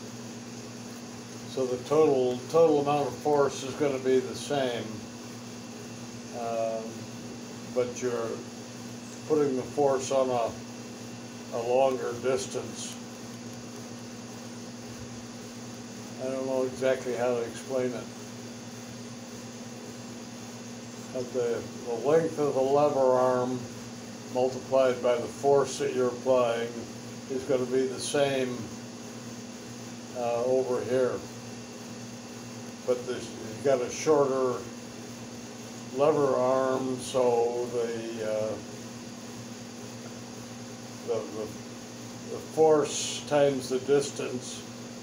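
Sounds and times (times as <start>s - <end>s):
faint hiss: 0.0s - 45.0s
low constant hum: 0.0s - 45.0s.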